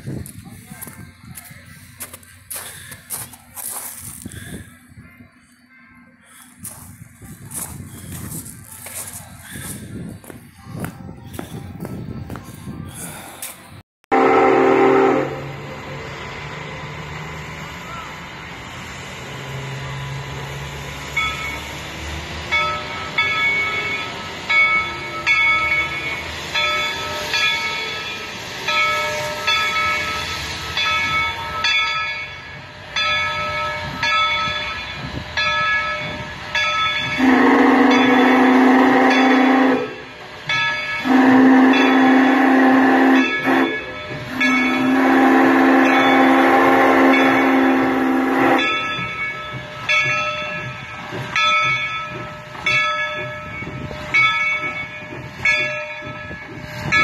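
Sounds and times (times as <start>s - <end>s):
locomotive bell ringing: 0.2s - 11.8s, 17.7s - 57.0s
steam locomotive whistle blasts: 14.1s - 16.1s, 37.1s - 40.2s, 41.0s - 49.0s.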